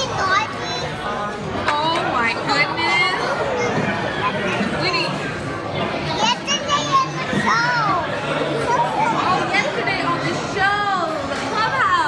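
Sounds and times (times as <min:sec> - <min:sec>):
children's high-pitched voices: 0:00.0 - 0:01.0, 0:06.1 - 0:08.1
restaurant chatter: 0:00.0 - 0:12.0.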